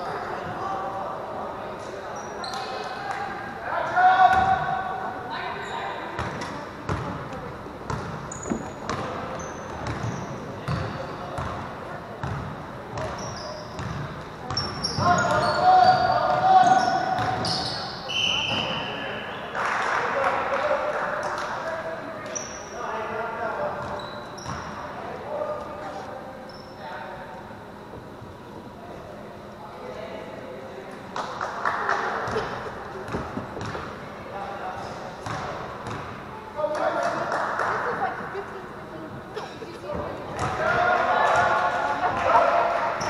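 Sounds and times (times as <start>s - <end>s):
sneaker squeaks: 2.0s - 3.0s, 5.4s - 7.2s, 7.9s - 11.6s, 12.2s - 19.5s, 22.2s - 22.8s, 23.8s - 24.9s, 25.6s - 26.9s.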